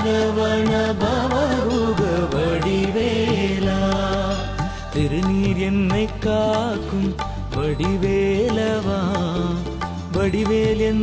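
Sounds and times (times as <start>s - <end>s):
devotional song melody: 0.0s - 11.0s.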